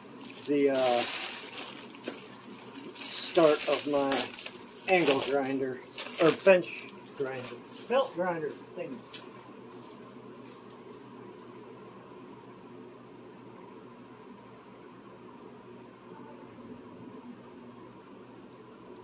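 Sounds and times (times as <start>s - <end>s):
faint background hiss and hum: 0.0s - 19.0s.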